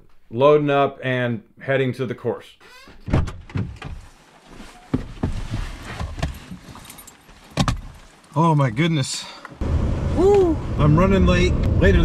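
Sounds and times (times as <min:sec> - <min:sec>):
rustling: 0:03.5 - 0:08.8
sharp knocks and thumps: 0:04.9 - 0:06.8, 0:07.5 - 0:08.0.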